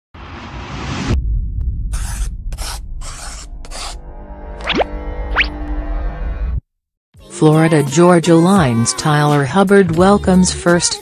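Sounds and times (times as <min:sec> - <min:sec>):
steady low rumble: 0:01.1 - 0:04.5.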